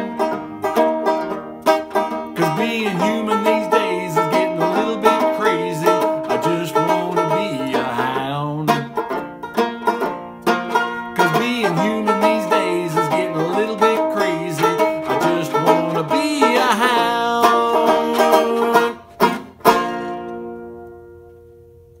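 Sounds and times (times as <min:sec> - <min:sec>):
banjo strumming: 0:00.0 - 0:21.7
man singing: 0:02.3 - 0:09.0, 0:11.1 - 0:19.1.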